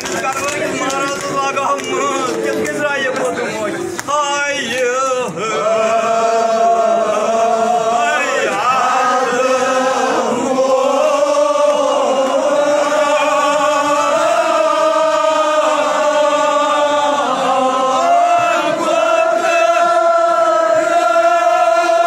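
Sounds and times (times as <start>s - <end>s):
men chanting in unison: 4.1s - 22.0s.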